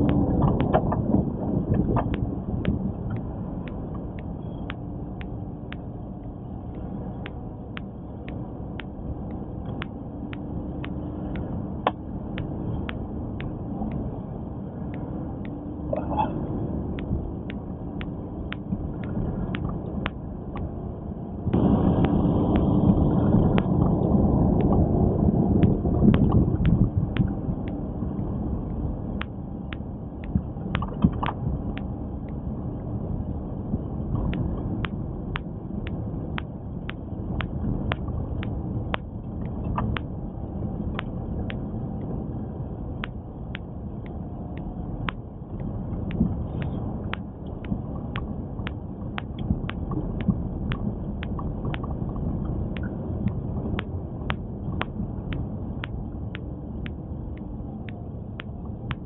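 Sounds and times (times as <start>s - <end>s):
car tyre rumble on snowy road: 0.0s - 59.0s
light regular ticking: 0.0s - 59.0s.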